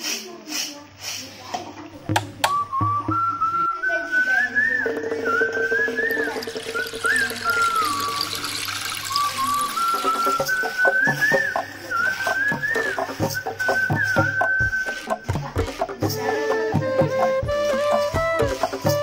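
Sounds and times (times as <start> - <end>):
whistled melody: 2.4 - 15.4, 16.1 - 19.0.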